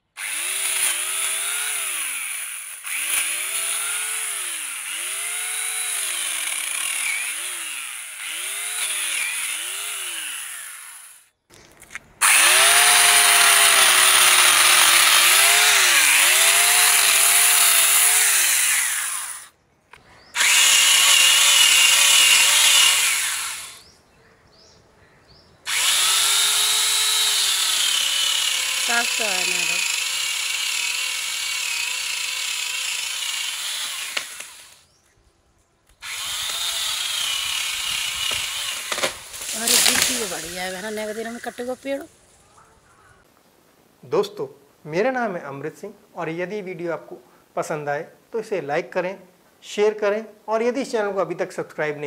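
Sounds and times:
chainsaw cutting log: 0:00.2 - 0:11.3, 0:12.2 - 0:19.5, 0:20.4 - 0:23.8, 0:25.7 - 0:34.9, 0:36.0 - 0:42.1.

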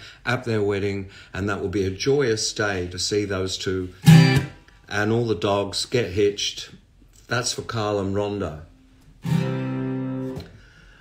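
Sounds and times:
acoustic guitar chord strummed: 0:04.0 - 0:04.6, 0:09.2 - 0:10.6.

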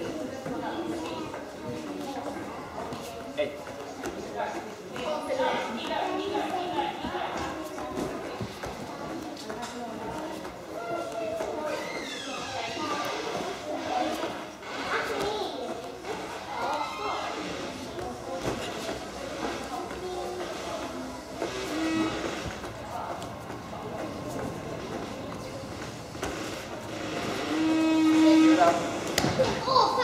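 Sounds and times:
voices chattering in echoing hall: 0:00.0 - 0:30.0.

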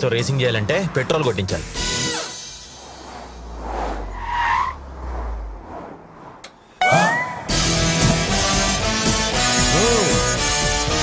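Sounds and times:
car engine rumble: 0:00.0 - 0:08.8
background music: 0:07.5 - 0:11.0.

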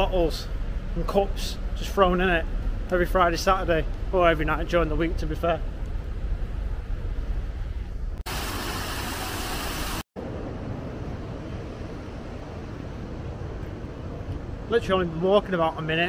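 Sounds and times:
low outdoor rumble: 0:00.0 - 0:08.3, 0:09.9 - 0:16.0.

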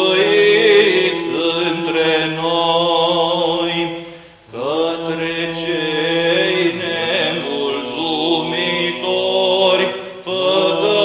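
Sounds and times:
choir chanting: 0:00.0 - 0:11.0.

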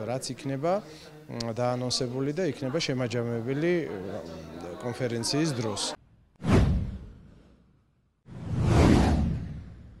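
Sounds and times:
whoosh sound effect: 0:08.3 - 0:10.0.

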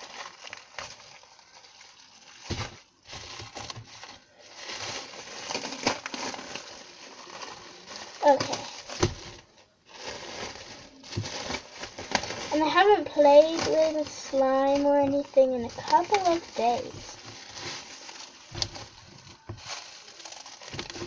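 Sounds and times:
plastic bag crinkling: 0:00.0 - 0:21.0
slime crackles: 0:00.0 - 0:21.0.

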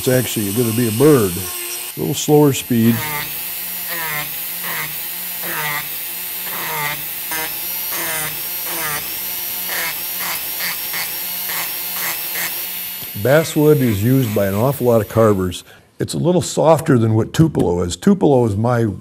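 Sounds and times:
rotary tool grinding wood: 0:00.0 - 0:15.6.

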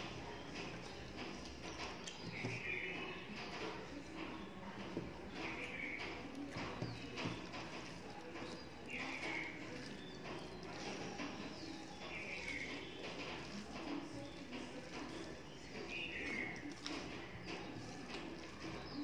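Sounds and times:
rice squished by hand on plate: 0:04.9 - 0:19.0.

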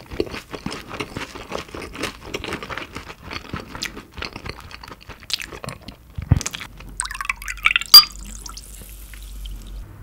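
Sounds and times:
wet sticky chewing: 0:00.0 - 0:07.0.

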